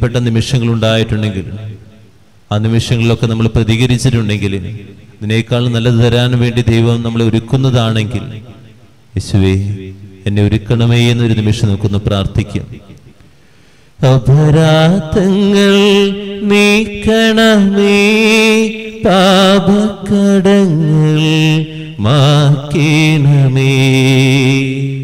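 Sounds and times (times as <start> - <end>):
man chanting a hymn: 0.0 - 13.0, 14.0 - 25.0.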